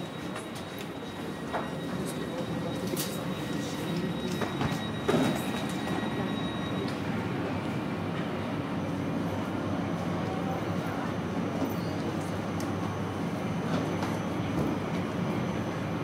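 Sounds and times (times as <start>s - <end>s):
standing train rumble and hum: 0.0s - 16.0s.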